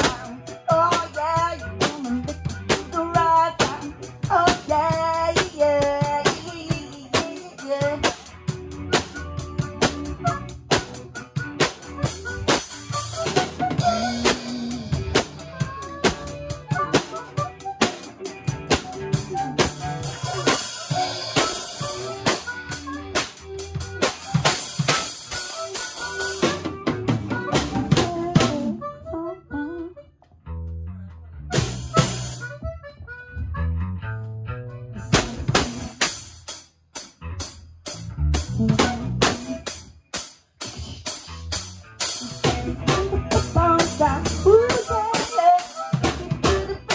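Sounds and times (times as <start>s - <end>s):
drum kit: 0.0s - 28.9s, 31.5s - 33.0s, 35.0s - 46.9s
harmonica: 0.0s - 30.2s, 31.4s - 36.5s, 38.3s - 39.9s, 40.5s - 46.9s
bass guitar: 0.0s - 46.9s
electric guitar: 0.0s - 46.9s.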